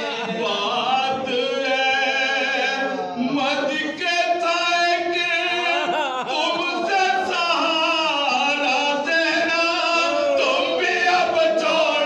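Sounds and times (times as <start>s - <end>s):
men chanting an elegy: 0.0s - 12.0s.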